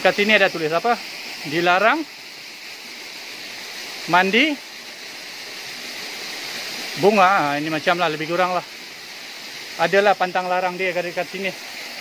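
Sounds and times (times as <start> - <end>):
waterfall and stream rushing: 0.0 - 12.0.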